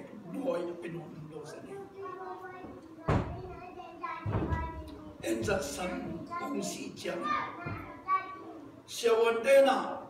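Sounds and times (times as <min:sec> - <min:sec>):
man preaching: 0:05.2 - 0:07.5, 0:08.9 - 0:10.0.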